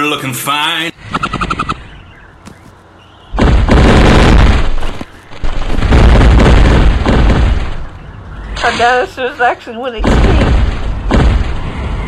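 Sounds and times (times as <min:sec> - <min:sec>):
machine-gun fire: 0:03.3 - 0:07.8, 0:10.0 - 0:11.7.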